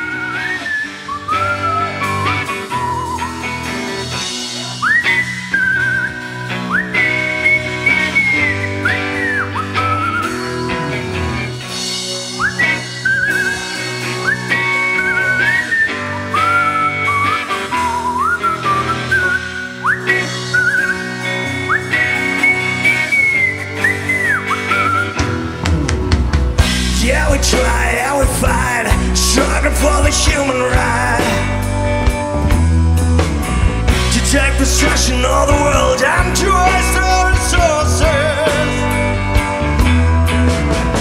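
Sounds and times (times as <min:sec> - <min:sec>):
low bass notes: 0:00.0 - 0:16.4, 0:17.1 - 0:41.0
whistle-like lead tone: 0:00.0 - 0:26.0, 0:27.5 - 0:32.6
keyboard chords: 0:00.0 - 0:41.0
psychedelic rock band playing: 0:00.0 - 0:41.0.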